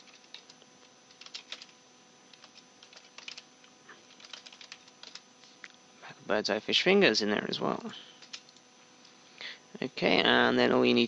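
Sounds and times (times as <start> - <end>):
computer keyboard typing: 0.0 - 5.3, 8.2 - 8.6.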